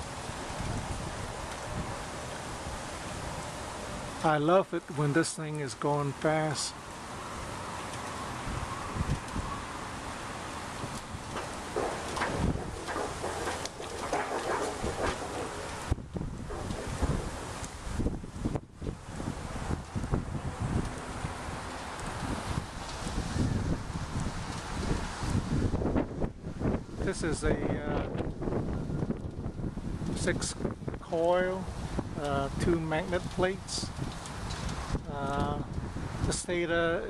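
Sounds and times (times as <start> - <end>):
gusty wind buffeting microphone: 0.0 - 4.6, 6.9 - 37.0.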